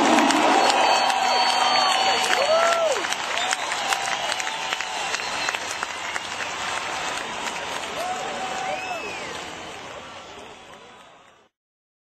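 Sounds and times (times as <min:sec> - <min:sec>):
crowd shouts: 0:00.0 - 0:11.0
crowd clapping: 0:00.0 - 0:11.5.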